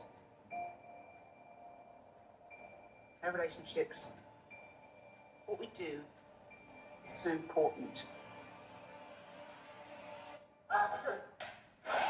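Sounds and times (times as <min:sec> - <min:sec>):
low hum: 0:00.0 - 0:10.7.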